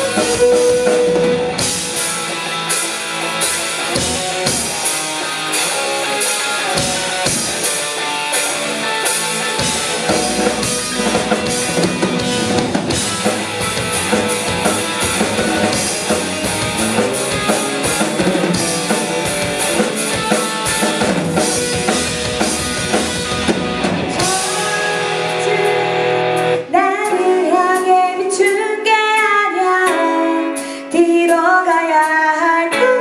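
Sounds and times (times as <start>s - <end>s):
woman singing: 0.0s - 1.7s, 24.2s - 33.0s
live rock band: 0.0s - 33.0s.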